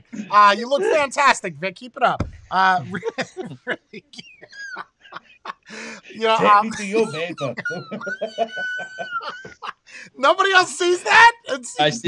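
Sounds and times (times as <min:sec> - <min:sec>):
men laughing and exclaiming: 0:00.0 - 0:01.1, 0:02.5 - 0:12.0.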